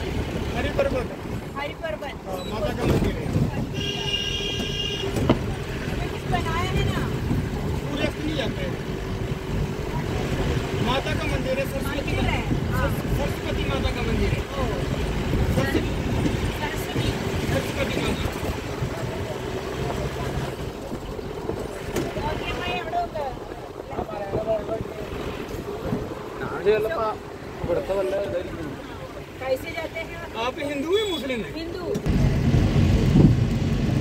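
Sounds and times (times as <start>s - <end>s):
vehicle engine and road rumble: 0.0s - 34.0s.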